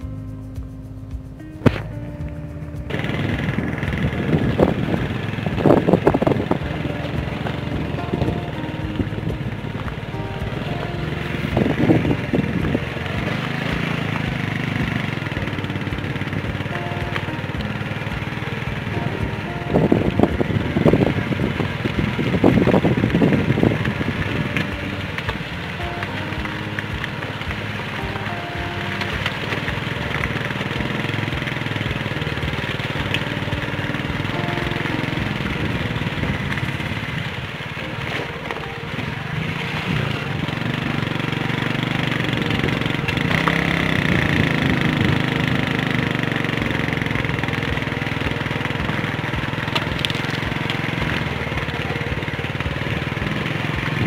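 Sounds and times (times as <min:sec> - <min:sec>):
vehicle engine on gravel track: 0:00.0 - 0:54.0
wind buffeting microphone: 0:01.4 - 0:54.0.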